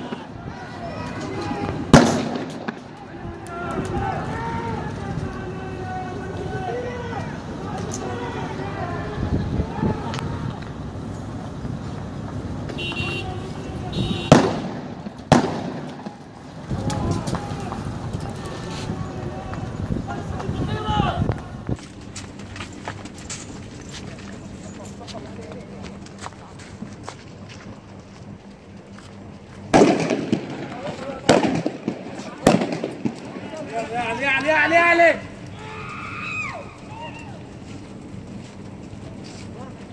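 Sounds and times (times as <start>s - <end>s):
loud explosive bangs: 1.7s - 3.0s, 14.0s - 16.3s, 29.7s - 33.6s
loud sharp blasts with echo: 1.8s - 3.0s, 13.9s - 16.3s, 29.7s - 33.6s.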